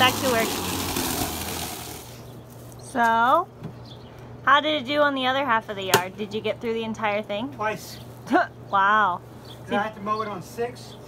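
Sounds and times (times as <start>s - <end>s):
electric lawn mower whirring: 0.0s - 2.3s.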